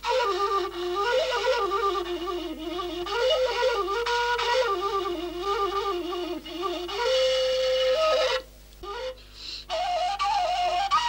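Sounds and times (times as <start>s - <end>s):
flute long note: 0.0s - 11.0s.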